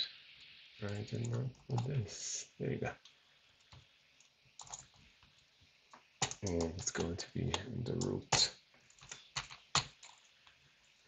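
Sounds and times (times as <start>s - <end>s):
computer keyboard keystrokes: 4.6s - 4.9s, 6.2s - 7.0s.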